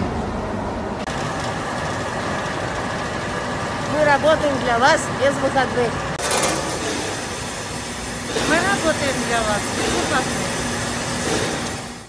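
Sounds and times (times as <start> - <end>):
conveyor machinery noise: 0.0 - 12.0.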